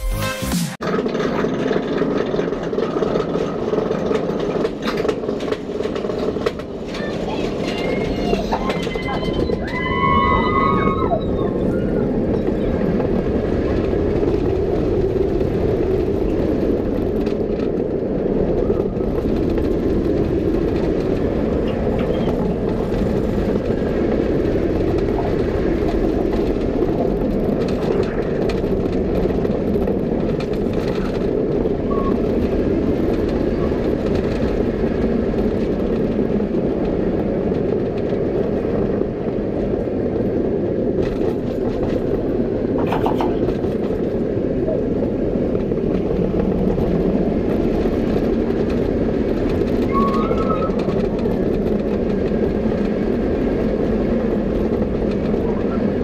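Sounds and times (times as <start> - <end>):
roller coaster running on track: 0.4 - 56.0
rushing wind noise: 0.8 - 56.0.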